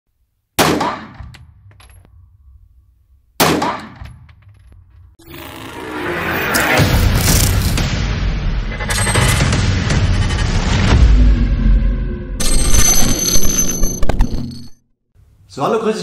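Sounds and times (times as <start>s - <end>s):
pistol shots echoing indoors: 0.6s - 1.4s, 3.4s - 4.1s
music: 6.6s - 12.4s.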